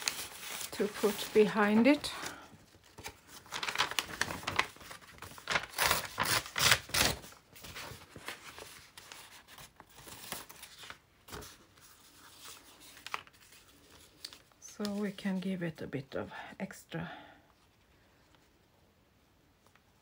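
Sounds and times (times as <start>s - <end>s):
paper rustling and crinkling: 0.0s - 15.6s.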